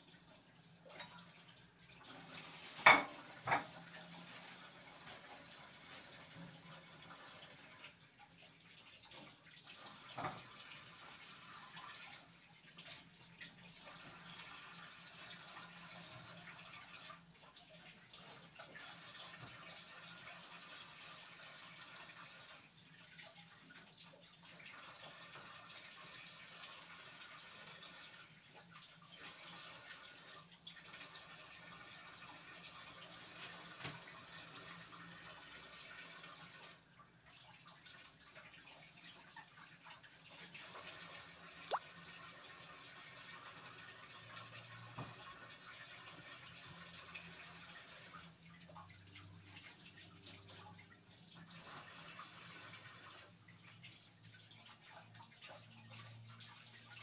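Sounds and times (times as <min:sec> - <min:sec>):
crockery clinking: 0:02.8 - 0:03.7
tap running into sink: 0:02.8 - 0:03.8.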